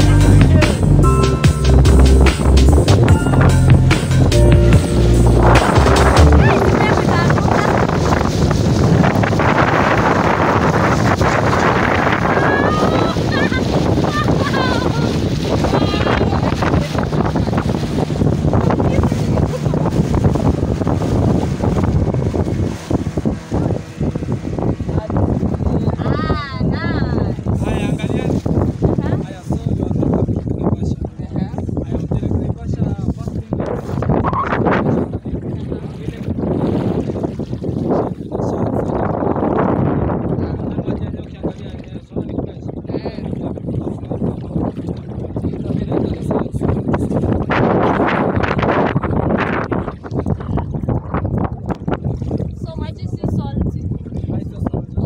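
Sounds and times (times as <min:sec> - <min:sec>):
boat rushing across choppy water: 0:00.0 - 0:55.0
motorboat engine rumble: 0:00.0 - 0:55.0
wind buffeting microphone: 0:00.0 - 0:55.0.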